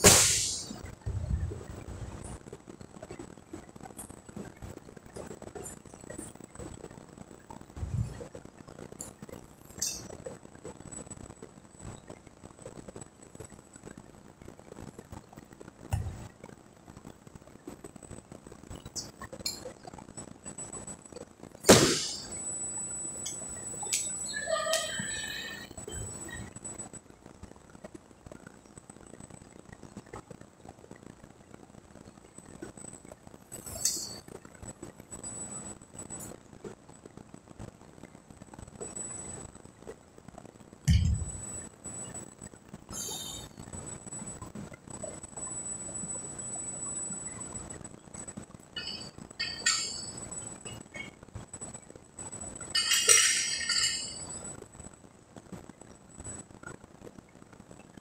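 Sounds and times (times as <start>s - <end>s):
metal clank with ring: 48.8s - 50.2s, 52.8s - 54.3s
light metallic clinks: 48.8s - 51.0s, 52.8s - 54.5s.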